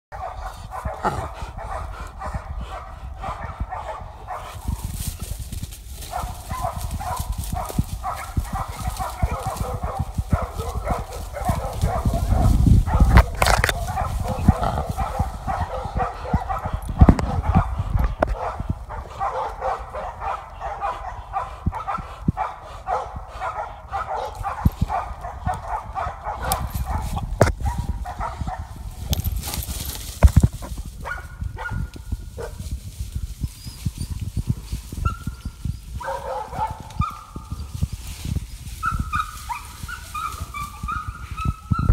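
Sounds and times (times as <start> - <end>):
dogs baying and barking: 0.1 - 5.4, 6.0 - 32.7, 33.4 - 38.0, 38.7 - 41.9
footsteps through underbrush: 4.3 - 16.6, 24.2 - 41.4
dog yelps and whines: 38.8 - 41.9.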